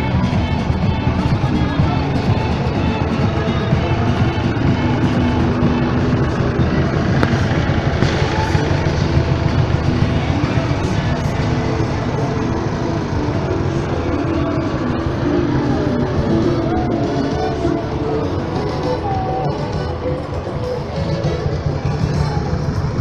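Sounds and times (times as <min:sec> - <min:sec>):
music playing: 0:00.0 - 0:23.0
tractor engine running: 0:00.0 - 0:23.0.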